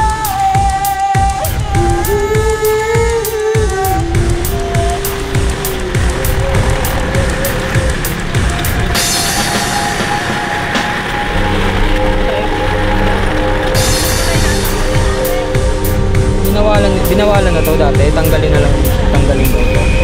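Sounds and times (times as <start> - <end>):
background music with steady beat: 0.0 - 20.0
steady rushing noise: 0.2 - 20.0.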